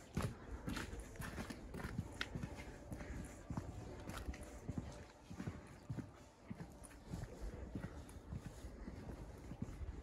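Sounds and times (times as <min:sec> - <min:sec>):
faint outdoor background noise: 0:00.0 - 0:10.0
footsteps on dirt: 0:00.0 - 0:10.0.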